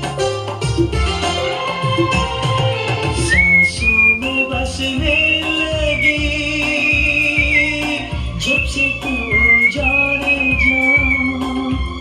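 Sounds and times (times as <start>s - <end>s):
recorded song music: 0.0s - 12.0s
person whistling a melody: 3.2s - 12.0s.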